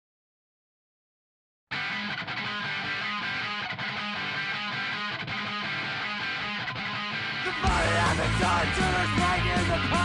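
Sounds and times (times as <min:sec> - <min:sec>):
guitar playing a riff: 0:01.7 - 0:10.0.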